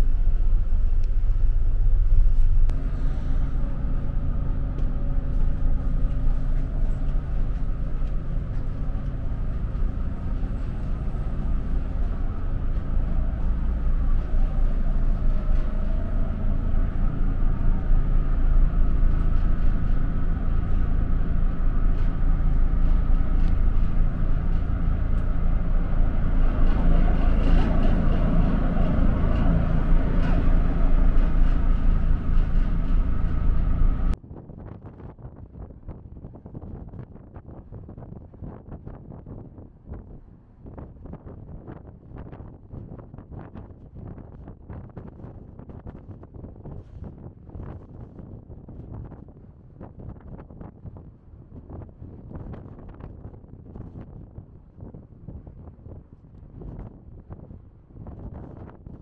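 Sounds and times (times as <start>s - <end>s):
ship engines droning: 0.0s - 34.2s.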